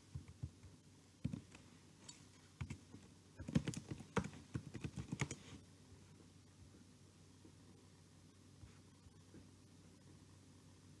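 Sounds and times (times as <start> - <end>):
computer keyboard typing: 3.4 - 5.4.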